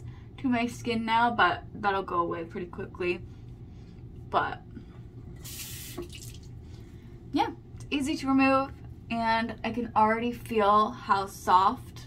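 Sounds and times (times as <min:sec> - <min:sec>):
water running from sink tap: 0:05.4 - 0:06.5.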